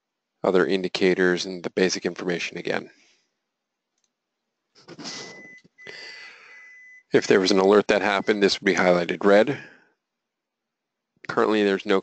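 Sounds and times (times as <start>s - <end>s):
breathy microphone hiss: 0.4s - 3.2s, 4.7s - 9.8s, 11.2s - 12.0s.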